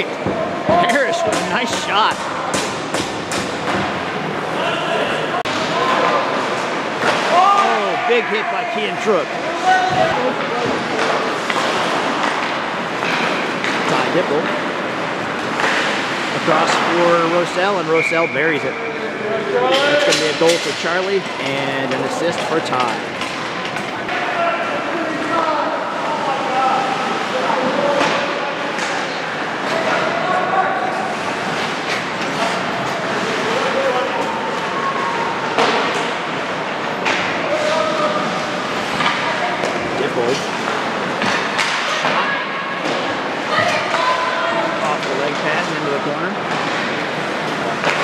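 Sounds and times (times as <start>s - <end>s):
players and spectators calling out: 0.0s - 2.9s, 4.0s - 11.8s
knocks against rink boards: 0.1s - 4.0s, 37.0s - 44.0s.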